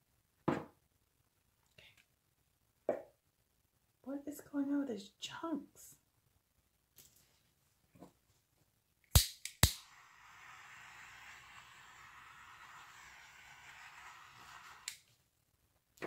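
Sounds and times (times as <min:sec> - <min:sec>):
torch flame hissing: 0:09.6 - 0:15.1.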